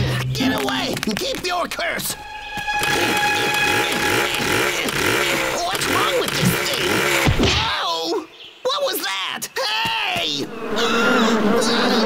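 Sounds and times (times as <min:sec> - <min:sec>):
cartoon chainsaw engine sputtering: 0:02.9 - 0:07.6.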